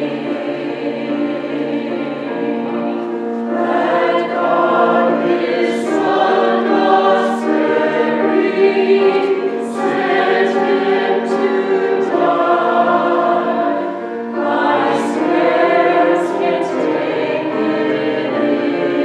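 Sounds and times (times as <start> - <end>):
mixed choir singing in harmony: 0.0 - 19.0.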